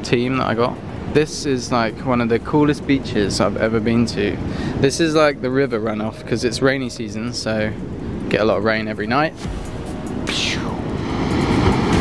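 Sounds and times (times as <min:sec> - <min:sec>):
ocean surf breaking: 0:00.0 - 0:06.7, 0:07.3 - 0:12.0.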